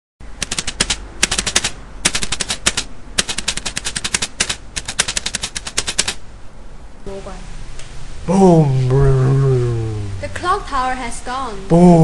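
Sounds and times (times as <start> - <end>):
rapid-fire sharp cracks: 0.4 - 6.2.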